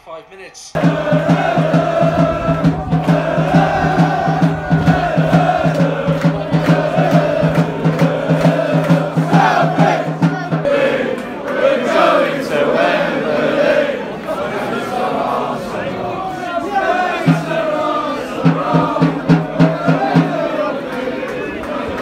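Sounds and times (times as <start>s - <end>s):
fast pulsing beat: 0.8s - 10.7s, 17.2s - 20.6s
voices singing in unison: 0.8s - 22.0s.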